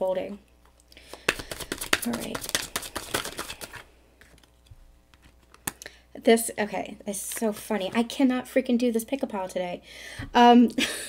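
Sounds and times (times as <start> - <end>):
faint card handling sounds: 0.8 - 5.8
cards shuffling: 1.0 - 5.8.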